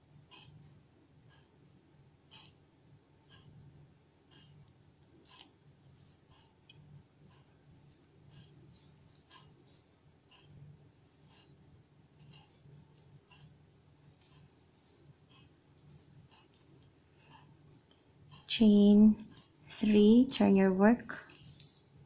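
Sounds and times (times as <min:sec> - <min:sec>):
soft faint ticks: 0:00.2 - 0:18.6, 0:21.1 - 0:22.0.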